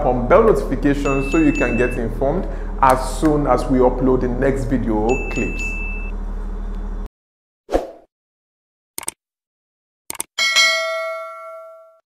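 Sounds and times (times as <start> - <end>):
bell chime: 1.0 - 2.0, 5.1 - 6.0, 10.4 - 12.0.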